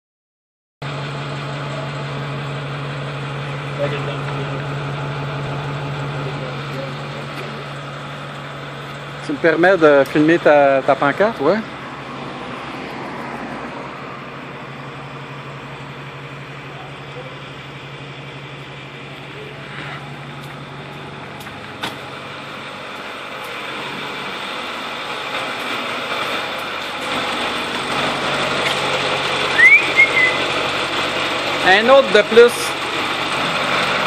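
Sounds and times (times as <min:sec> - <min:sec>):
diesel engine running: 0:00.8 - 0:34.0.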